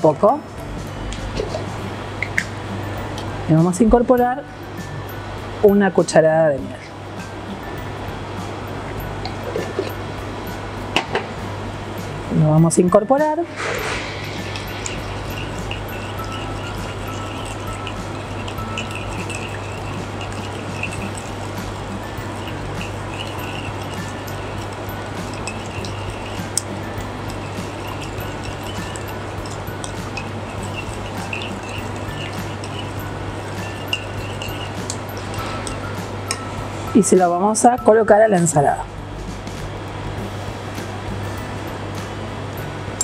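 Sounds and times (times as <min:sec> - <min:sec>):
background music: 0:00.0 - 0:43.0
spoon clinking against glass bowl: 0:13.8 - 0:37.1.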